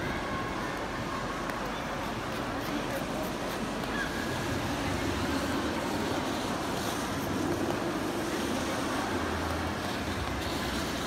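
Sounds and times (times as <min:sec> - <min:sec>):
skates on ice: 0:00.0 - 0:11.0.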